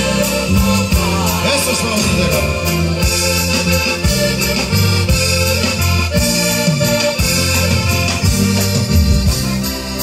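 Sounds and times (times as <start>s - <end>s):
accordion melody: 0.0s - 10.0s
bass line: 0.0s - 10.0s
drum kit steady beat: 0.0s - 10.0s.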